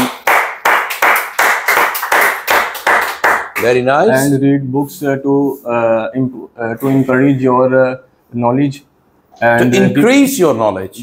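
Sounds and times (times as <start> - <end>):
hand clapping: 0.0 - 3.8.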